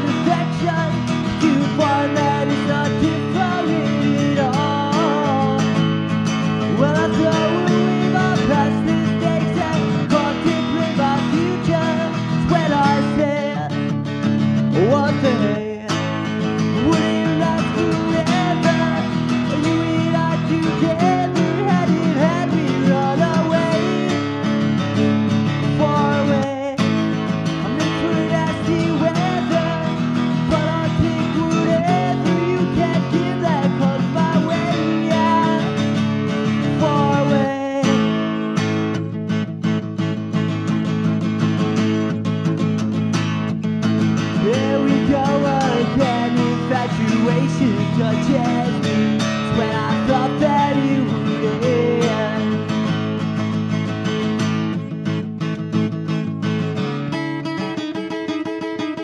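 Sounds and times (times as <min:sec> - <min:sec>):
man singing: 0:00.0 - 0:39.4, 0:43.8 - 0:55.0
strummed acoustic guitar: 0:00.0 - 0:59.0.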